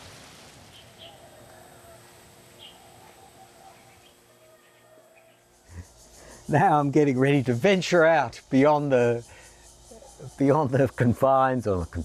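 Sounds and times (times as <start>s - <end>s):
quiet outdoor ambience: 0.0s - 12.0s
faint bird chirps: 0.7s - 2.0s, 2.6s - 6.5s.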